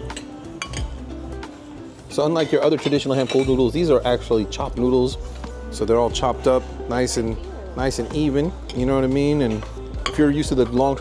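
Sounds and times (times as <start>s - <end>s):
background music with held tones: 0.0s - 11.0s
cutlery clinking on ceramic plate: 0.1s - 0.9s, 2.4s - 3.5s.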